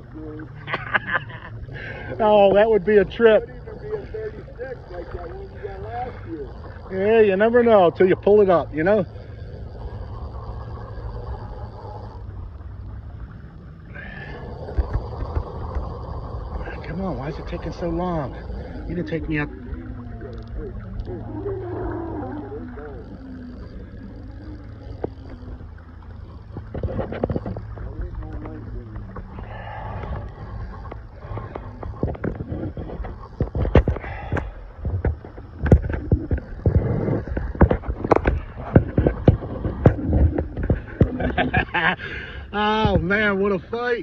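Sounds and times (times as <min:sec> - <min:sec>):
wind rumble on microphone: 0:00.0 - 0:44.0
person laughing: 0:00.6 - 0:01.6, 0:41.1 - 0:42.1.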